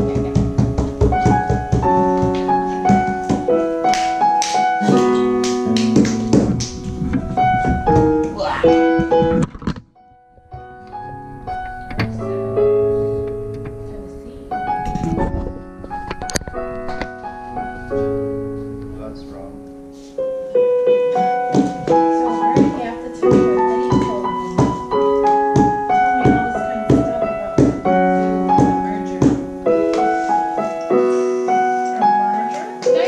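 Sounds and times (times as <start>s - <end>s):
digital piano chords: 0.0s - 33.0s.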